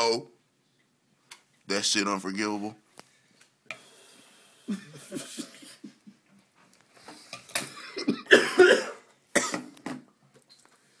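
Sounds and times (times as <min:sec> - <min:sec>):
man laughing: 0:04.7 - 0:06.2
harsh hacking coughs: 0:08.0 - 0:09.7.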